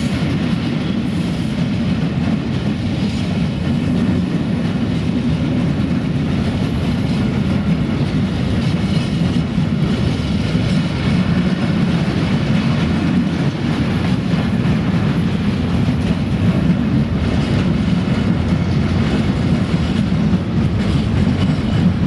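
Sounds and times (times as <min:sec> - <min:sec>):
steel train wheels on rails: 0:00.0 - 0:22.0.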